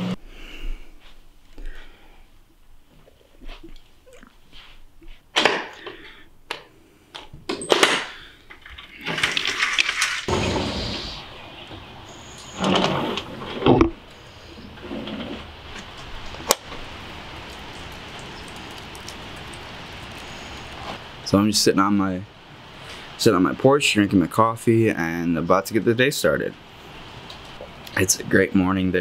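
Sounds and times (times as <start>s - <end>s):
sliding glass door opening: 8.9s - 13.9s, 14.8s - 16.0s
rain hissing outdoors: 14.0s - 29.0s.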